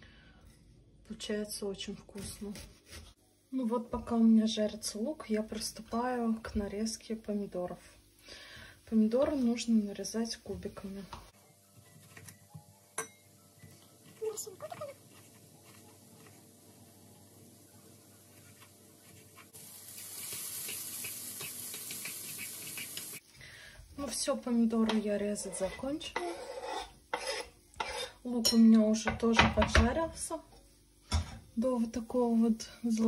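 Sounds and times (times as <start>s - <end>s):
knife scraping a cutting board: 2.5s - 3.2s, 14.1s - 16.4s, 18.3s - 19.6s, 25.4s - 28.2s.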